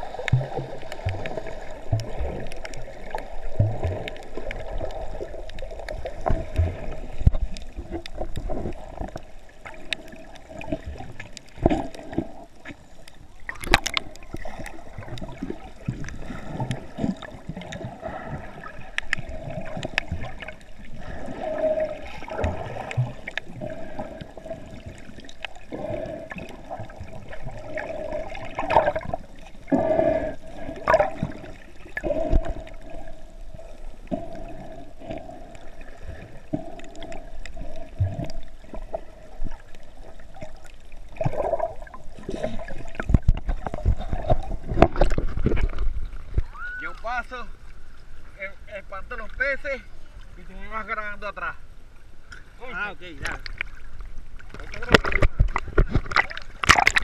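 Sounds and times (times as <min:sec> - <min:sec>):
underwater water bubbling: 0:00.0 - 0:50.4, 0:51.6 - 0:57.0.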